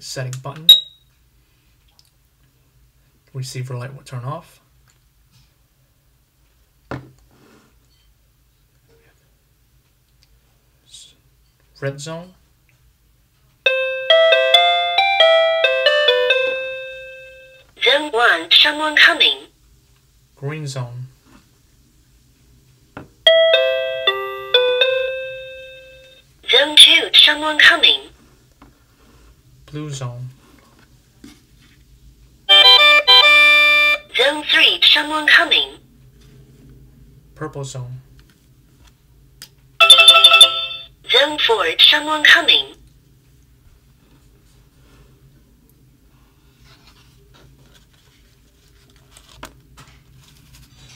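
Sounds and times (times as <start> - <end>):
electronic chime: 32.5 - 34.0, 39.8 - 40.9
electronic chime tune: 39.8 - 40.9.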